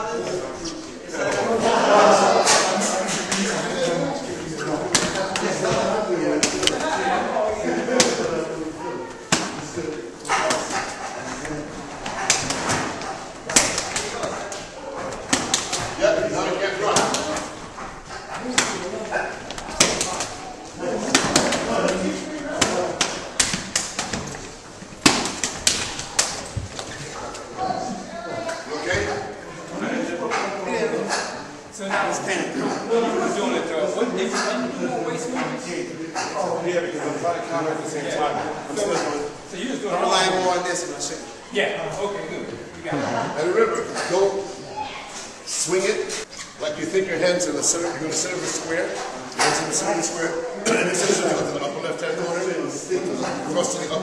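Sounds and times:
men talking and laughing: 0.0s - 44.7s, 45.5s - 54.0s
hands slapping gloves and forearms: 12.0s - 16.0s, 16.9s - 17.6s, 18.5s - 27.0s.

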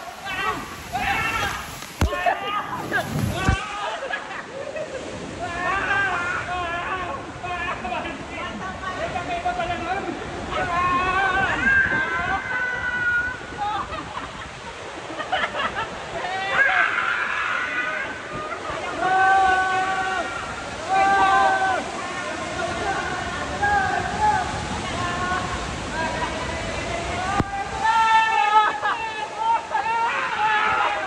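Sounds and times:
splashing water: 0.0s - 4.3s.

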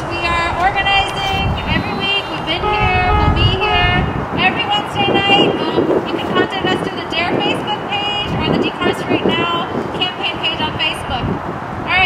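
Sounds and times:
car horns honking: 0.0s - 6.6s
street noise: 0.0s - 12.0s.

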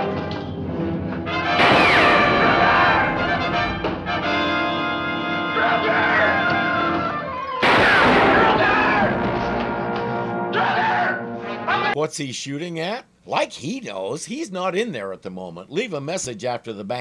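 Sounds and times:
dramatic score music: 0.0s - 7.3s, 8.2s - 11.9s
gunshots with falling whine: 1.6s - 4.7s, 7.6s - 10.0s.

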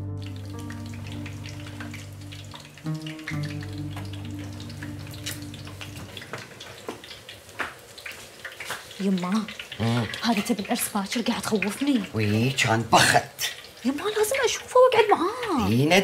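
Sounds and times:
soft background music: 0.0s - 6.9s
chicken sizzling in oil: 0.0s - 16.0s.

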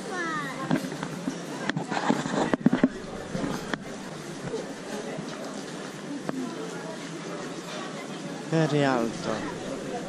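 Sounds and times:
indistinct voices on street: 0.0s - 10.0s.

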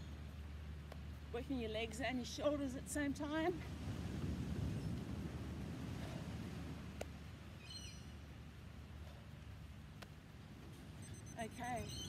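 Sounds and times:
high bird chirps: 11.0s - 12.0s.

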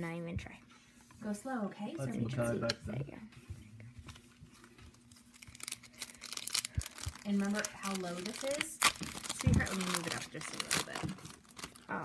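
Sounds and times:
hands rustling trading cards: 4.0s - 11.8s
wrapper crinkling: 4.5s - 12.0s.

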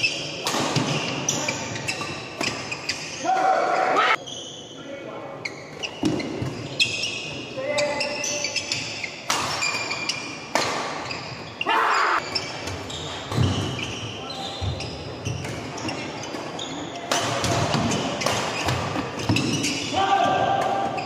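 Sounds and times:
shoe soles squeaking: 4.1s - 10.4s, 11.0s - 17.1s, 17.9s - 20.0s.

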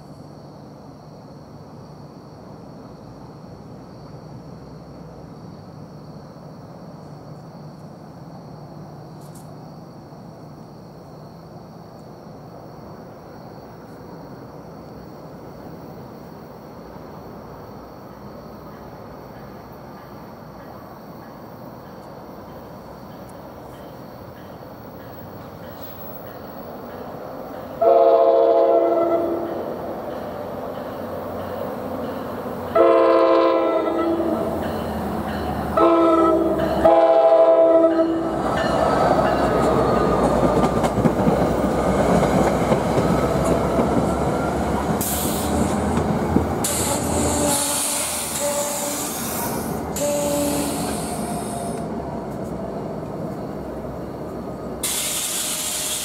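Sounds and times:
train rumbling past: 0.0s - 56.0s
locomotive horn: 27.8s - 29.6s, 32.7s - 34.5s, 35.7s - 38.4s, 46.6s - 49.2s, 49.9s - 51.9s.

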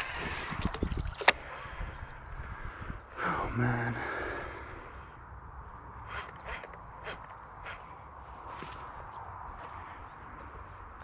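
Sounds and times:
light wind on microphone: 0.0s - 3.6s.

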